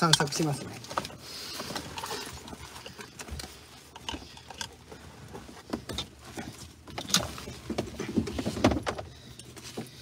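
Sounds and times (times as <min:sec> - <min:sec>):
handling noises: 0:00.0 - 0:10.0
small clicks and knocks in car: 0:00.0 - 0:10.0.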